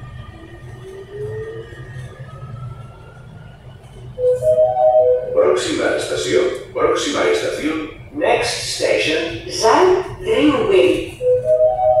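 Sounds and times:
electric train motors whining: 0.0 - 12.0
low train rumble: 0.0 - 12.0.

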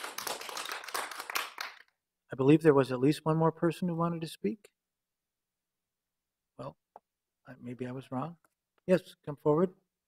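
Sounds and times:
audience applause: 0.0 - 1.8.

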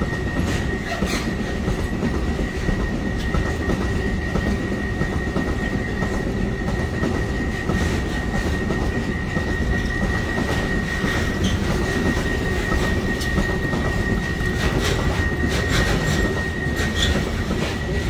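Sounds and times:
train wheels rumbling on rails: 0.0 - 18.0.

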